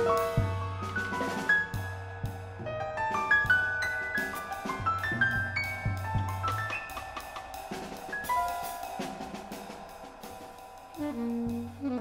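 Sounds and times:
free jazz drumming: 0.0 - 12.0.

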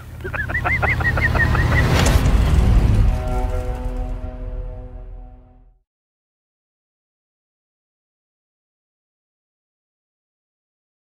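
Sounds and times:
low rumble: 0.6 - 5.8.

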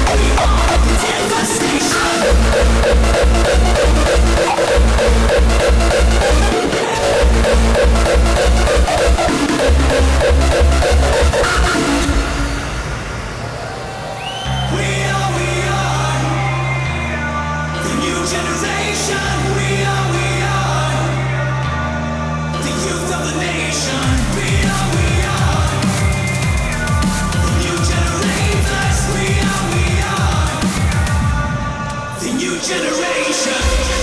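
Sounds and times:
held bass and synth chords: 0.0 - 32.3
heavy bass: 0.0 - 32.9, 33.6 - 34.0.

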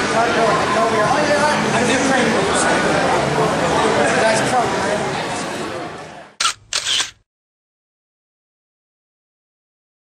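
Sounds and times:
camera shutter clicking: 6.4 - 7.2.

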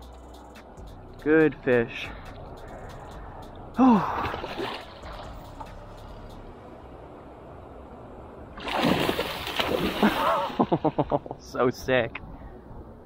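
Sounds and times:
low water noise: 2.3 - 13.0
fish splashing in water: 8.6 - 10.8.

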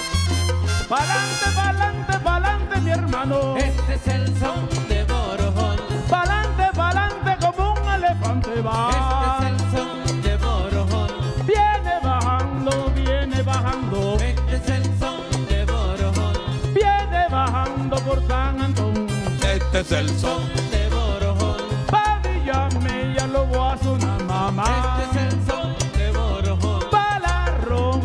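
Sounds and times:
acoustic guitar: 0.0 - 28.0
bending melodic lead line: 0.0 - 28.0
repeating bass line: 0.0 - 28.0
scraped guiro: 0.0 - 28.0.

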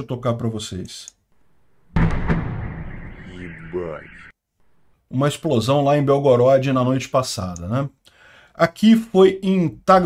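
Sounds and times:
explosion boom with rumbling decay: 1.8 - 4.3
sharp crack: 1.9 - 4.3.

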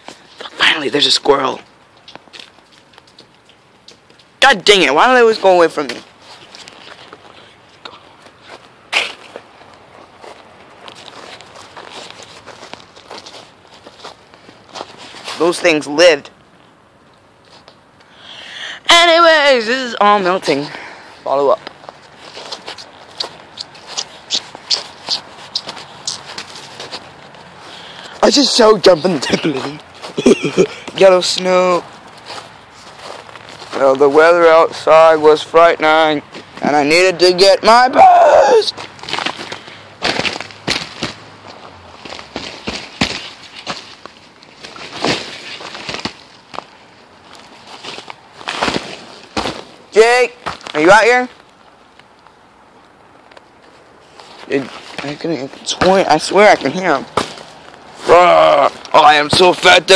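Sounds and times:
footsteps crunching on snowy leaves: 8.4 - 15.6, 21.6 - 31.2, 31.8 - 35.2, 38.6 - 51.6.

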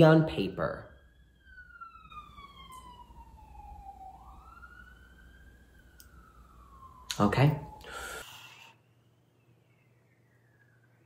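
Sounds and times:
ambulance siren wailing: 0.0 - 11.0.

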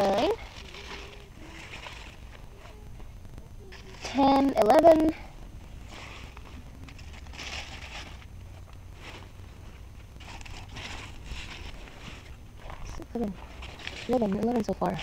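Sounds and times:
low steady microphone rumble: 0.0 - 15.0
rustling through plants: 0.0 - 15.0.

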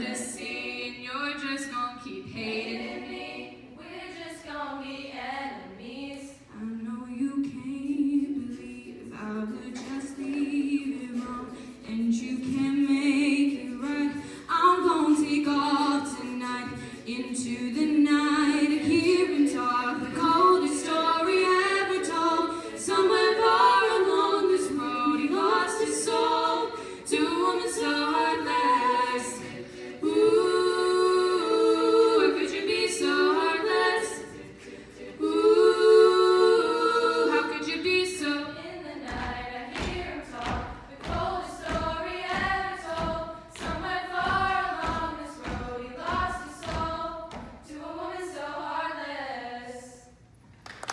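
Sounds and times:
female a cappella group singing: 0.0 - 50.3
thumping beat: 39.1 - 47.6.

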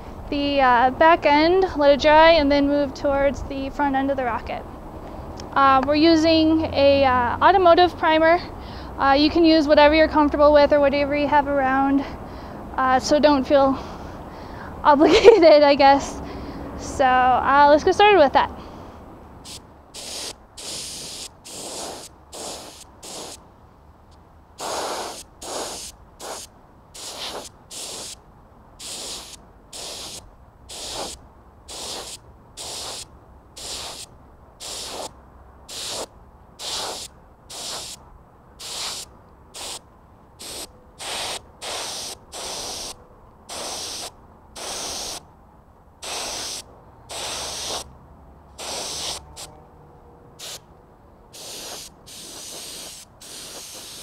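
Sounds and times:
spray gun hissing: 19.4 - 23.4, 24.6 - 28.2, 28.8 - 35.1, 35.7 - 38.0, 38.6 - 39.8, 40.4 - 45.2, 46.0 - 47.9, 48.6 - 49.5, 50.4 - 50.6, 51.4 - 54.0.

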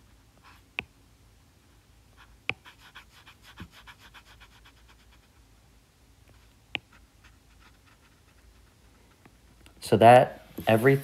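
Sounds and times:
stylus scribbling on screen: 2.2 - 5.4, 6.8 - 8.8.

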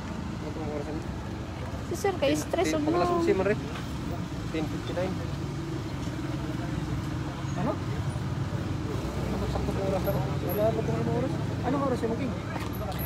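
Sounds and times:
faint voices talking: 0.1 - 13.0.

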